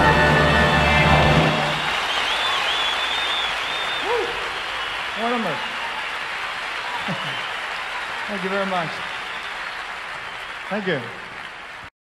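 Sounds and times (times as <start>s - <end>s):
audience applauding: 0.0s - 11.9s
piercing whistles: 1.6s - 6.2s
person shouting: 4.0s - 4.4s.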